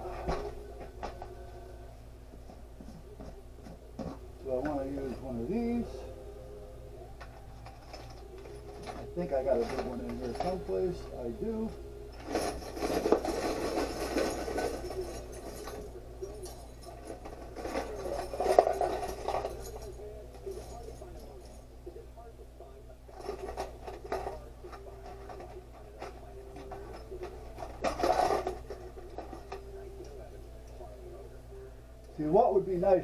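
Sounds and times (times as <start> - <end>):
hardware rummaged on workbench: 0.0 - 1.4, 2.3 - 6.0, 7.2 - 21.7, 23.1 - 30.9
faint steady hum: 0.0 - 33.0
metal hardware rattling in jar: 7.6 - 11.1, 12.2 - 21.7, 23.1 - 29.7.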